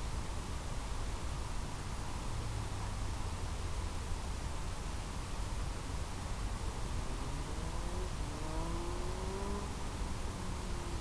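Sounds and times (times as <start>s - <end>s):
steady rushing hiss: 0.0s - 11.0s
faint rising whine: 2.0s - 11.0s.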